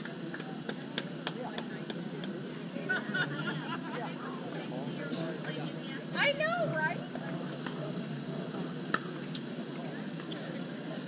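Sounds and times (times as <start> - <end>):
murmur of distant voices: 0.0 - 11.0.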